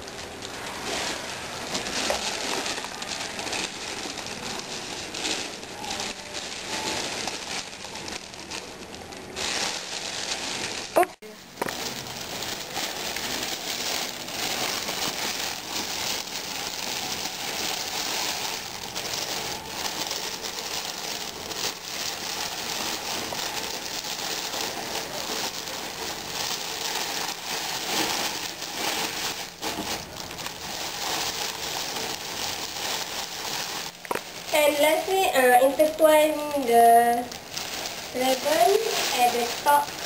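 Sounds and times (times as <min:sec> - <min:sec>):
cellophane crinkling: 0:00.0 - 0:40.0.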